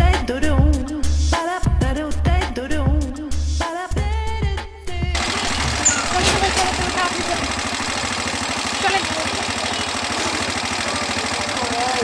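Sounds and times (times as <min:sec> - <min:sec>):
motorcycle engine idling: 0:05.1 - 0:12.0.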